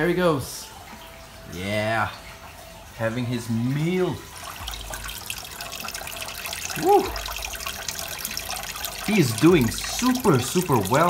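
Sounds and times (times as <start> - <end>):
aquarium water trickling: 0.0 - 11.0
person saying woo: 6.8 - 7.2.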